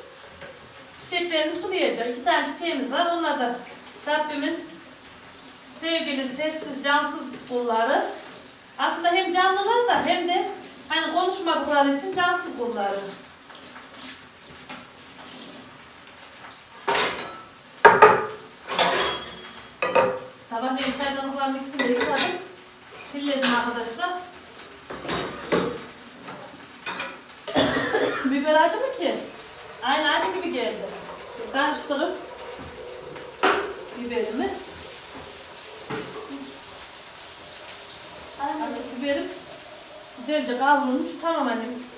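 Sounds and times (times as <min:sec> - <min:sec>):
peppers sizzling: 0:00.0 - 0:41.9
utensil clanking on frying pan: 0:16.8 - 0:21.1
dishes clattering at sink: 0:16.8 - 0:22.5, 0:24.9 - 0:28.3, 0:32.2 - 0:33.9, 0:34.8 - 0:36.6.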